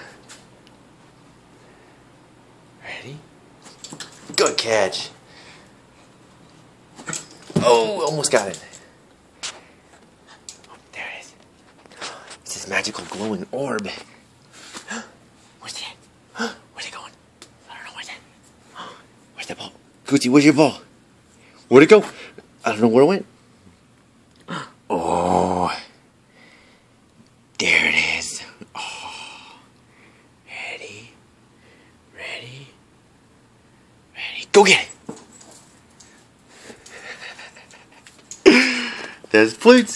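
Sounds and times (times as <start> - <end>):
person whispering: 2.8 - 3.3, 10.5 - 11.4, 14.9 - 19.8, 27.6 - 29.7, 30.4 - 31.2, 32.1 - 32.8, 34.1 - 34.9.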